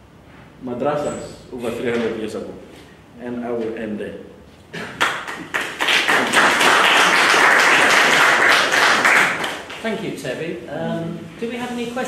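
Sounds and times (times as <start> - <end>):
audience applauding: 4.9 - 9.8.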